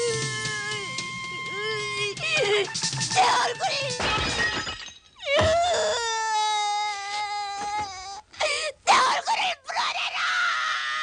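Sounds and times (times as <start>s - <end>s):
girl sobbing: 0.0s - 0.9s, 1.5s - 2.8s, 5.2s - 9.6s
girl wailing: 5.2s - 9.2s.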